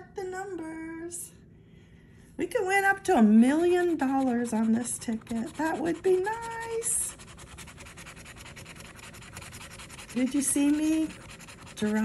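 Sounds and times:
scratching lottery ticket coating: 0:03.6 - 0:12.0.

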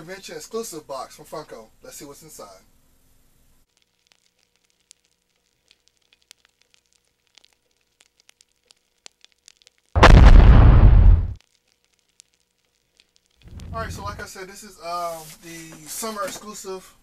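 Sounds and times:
faint crackling sparks: 0:00.1 - 0:17.0
loud explosion: 0:10.0 - 0:11.4, 0:13.5 - 0:14.3.

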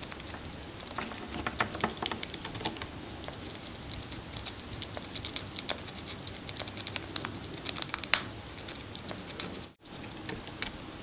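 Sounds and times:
chipmunk nibbling crunches: 0:00.0 - 0:10.9.

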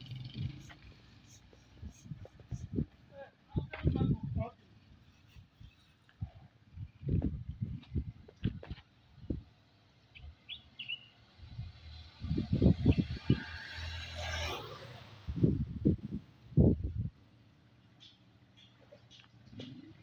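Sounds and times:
wind rumbling on microphone: 0:00.0 - 0:04.6, 0:05.4 - 0:09.6, 0:11.4 - 0:17.2
passing vehicle engine and tyres: 0:00.0 - 0:20.0
bird chirps: 0:10.1 - 0:11.2, 0:18.0 - 0:19.3.

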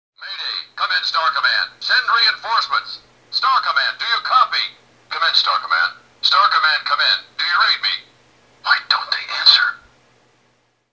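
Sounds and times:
recorded voice from toy speaker: 0:00.2 - 0:09.9.

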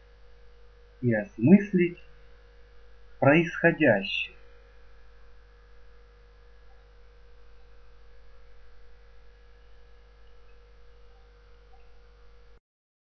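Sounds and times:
electrical mains hum: 0:00.0 - 0:12.6
faint hiss: 0:00.0 - 0:12.6.

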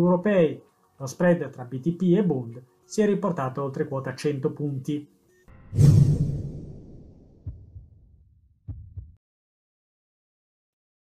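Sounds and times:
deep boom: 0:05.5 - 0:09.1
soft low heartbeat thuds: 0:07.4 - 0:09.2.

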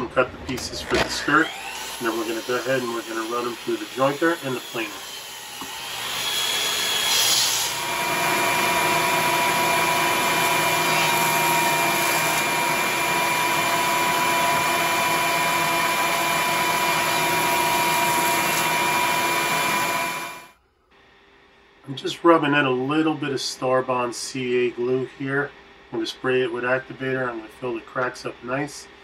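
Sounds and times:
jointer motor whine: 0:00.0 - 0:20.5.

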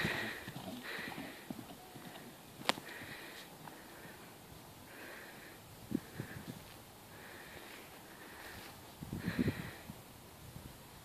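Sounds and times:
hoofbeats on grass: 0:00.0 - 0:04.2.

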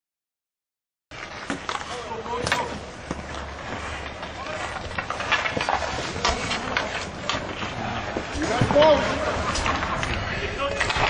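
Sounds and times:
hockey sticks clacking: 0:01.2 - 0:11.0
players calling out: 0:01.7 - 0:11.0.

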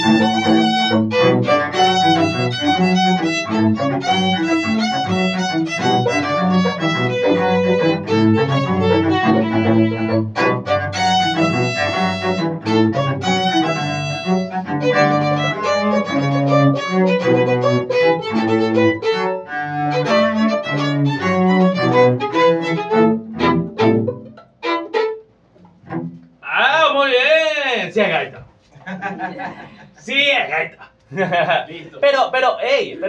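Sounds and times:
string ensemble playing lively music: 0:00.0 - 0:26.4.

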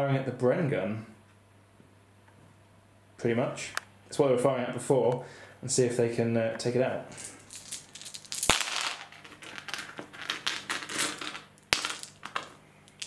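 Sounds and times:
dice rattling and clattering: 0:07.2 - 0:13.0.

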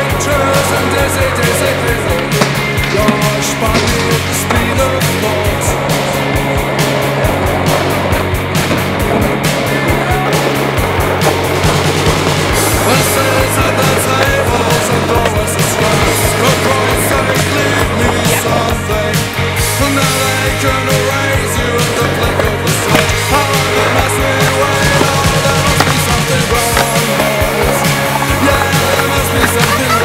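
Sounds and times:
rock music with guitars and drums: 0:00.0 - 0:30.0
skateboard wheels rolling on pavement: 0:00.0 - 0:30.0.

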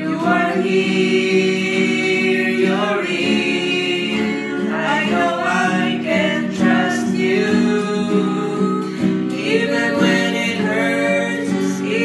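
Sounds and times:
acoustic guitar: 0:00.0 - 0:12.0
voices singing in harmony: 0:00.0 - 0:12.0.

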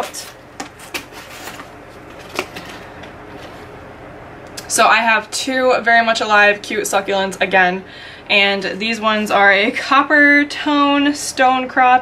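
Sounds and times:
hands handling cardboard box: 0:00.0 - 0:03.6
low room hum: 0:00.0 - 0:12.0.

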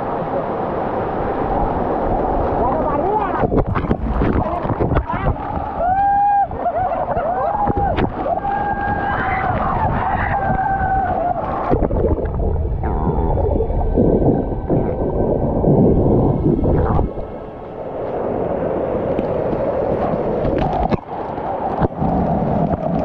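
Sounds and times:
waterfall rushing onto camera: 0:00.0 - 0:23.0
water splashing over rock: 0:19.1 - 0:23.0.

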